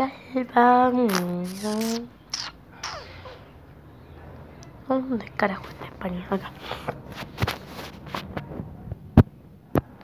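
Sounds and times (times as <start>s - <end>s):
faint background noise: 0.0s - 10.0s.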